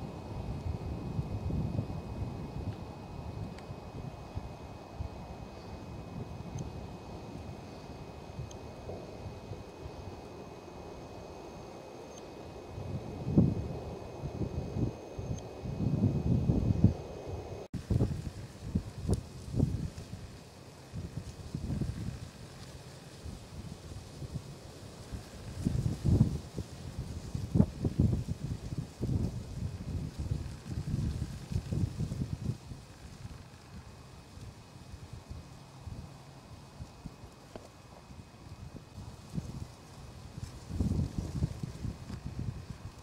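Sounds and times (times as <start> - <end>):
wind buffeting microphone: 0.0 - 11.7, 12.3 - 22.6, 23.2 - 43.0.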